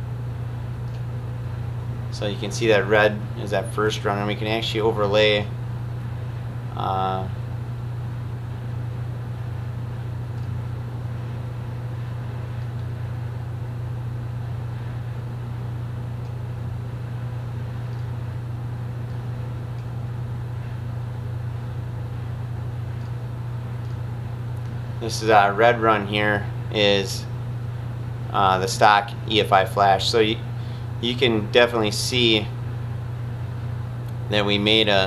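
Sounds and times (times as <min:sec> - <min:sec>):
low mechanical hum: 0:00.0 - 0:35.0.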